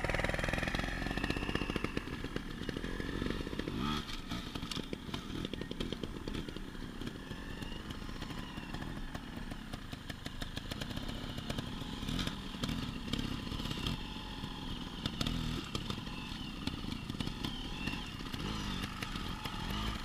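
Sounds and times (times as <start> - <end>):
motorbike engine revving: 0.0 - 20.0.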